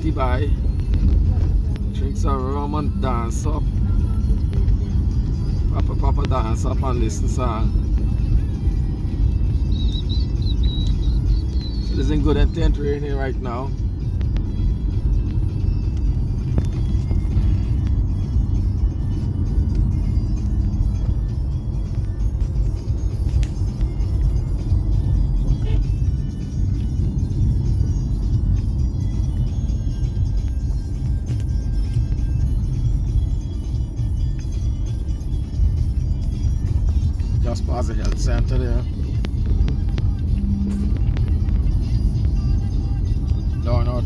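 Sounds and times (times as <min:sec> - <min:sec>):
car driving rumble: 0:00.0 - 0:44.0
music playing: 0:00.0 - 0:44.0.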